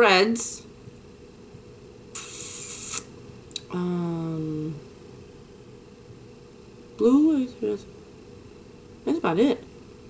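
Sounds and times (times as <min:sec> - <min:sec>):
short high hiss: 0:02.1 - 0:03.1.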